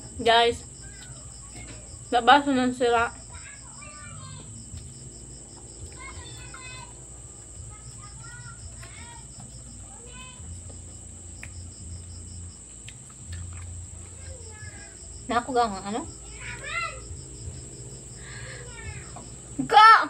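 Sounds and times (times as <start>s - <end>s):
faint voices: 0.0s - 20.0s
insects chirring: 0.0s - 20.0s.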